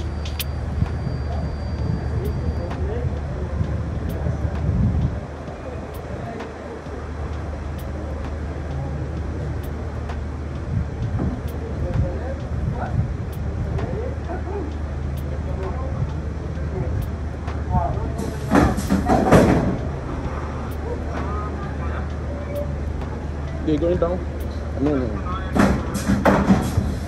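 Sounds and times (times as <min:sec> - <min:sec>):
faint voices: 0:00.0 - 0:27.0
soft tick: 0:05.9 - 0:12.6, 0:13.2 - 0:16.3.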